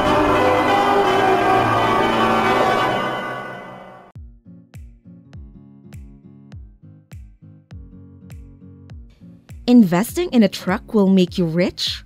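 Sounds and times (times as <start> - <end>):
bell-like chimes: 0.0 - 4.1.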